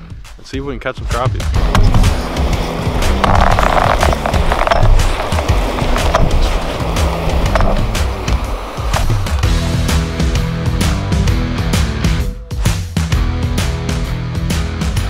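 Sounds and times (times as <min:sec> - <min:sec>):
background music: 0:00.0 - 0:15.0
footsteps crunching on ice: 0:01.6 - 0:09.4
sled scraping on ice: 0:01.6 - 0:09.5.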